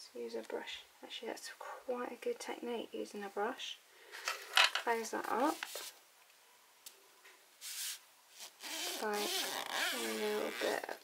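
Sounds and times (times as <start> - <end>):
speech: 0.0 - 3.8, 4.8 - 5.6, 9.9 - 11.0.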